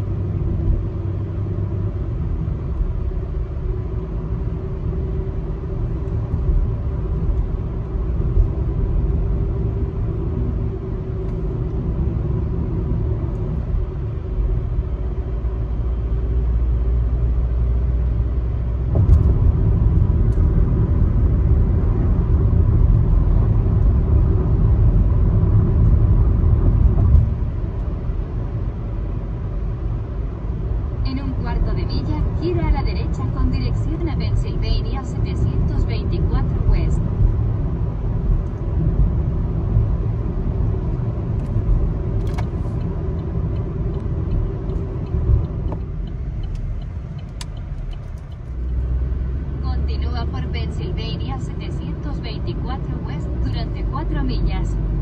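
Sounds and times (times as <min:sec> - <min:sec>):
road and tyre noise in car: 0:00.0 - 0:55.0.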